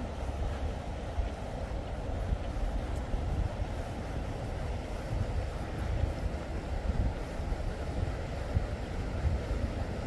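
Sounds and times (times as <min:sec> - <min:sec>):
steady background hum: 0:00.0 - 0:10.0
wind buffeting microphone: 0:00.0 - 0:10.0.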